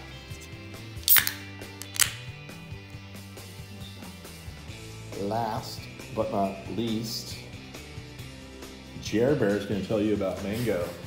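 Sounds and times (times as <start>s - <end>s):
background music: 0.0s - 11.0s
beer can tab cracking open: 1.0s - 2.3s.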